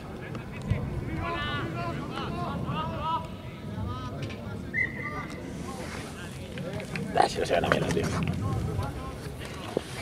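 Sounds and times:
distant voices: 0:00.0 - 0:10.0
wind rumbling on microphone: 0:00.0 - 0:10.0.

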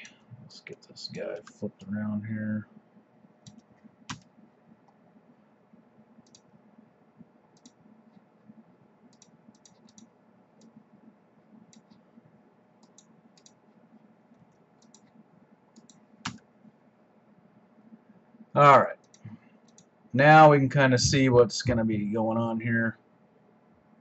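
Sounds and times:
faint low hum: 0:00.0 - 0:24.0
computer mouse clicks: 0:03.4 - 0:05.0, 0:06.2 - 0:06.5, 0:07.6 - 0:08.3, 0:09.1 - 0:10.8, 0:11.7 - 0:12.1, 0:12.8 - 0:16.5, 0:19.0 - 0:19.9.

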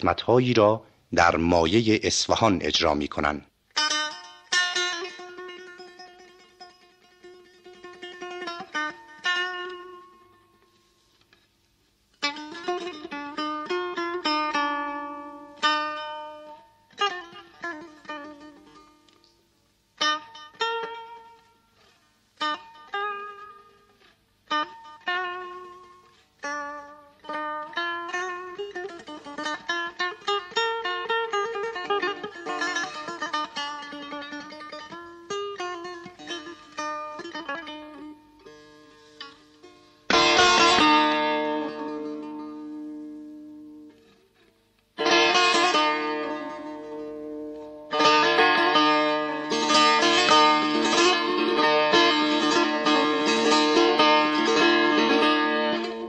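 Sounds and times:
plucked setar melody: 0:00.0 - 0:11.5, 0:12.1 - 0:56.0.

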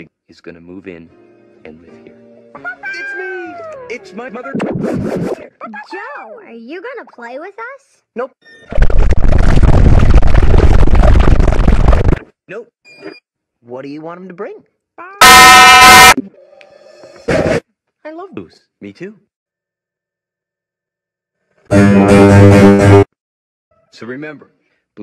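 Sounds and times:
distorted harsh noise burst: 0:08.7 - 0:12.2, 0:15.2 - 0:16.2
strummed guitar music: 0:21.7 - 0:23.0.

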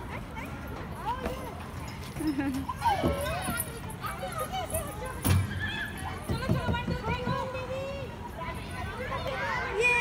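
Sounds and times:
children's voices overlapping: 0:00.0 - 0:10.0.

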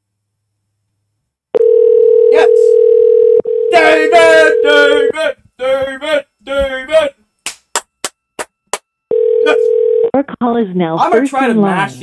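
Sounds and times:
telephone ringback tone: 0:01.6 - 0:05.1, 0:09.1 - 0:10.2.

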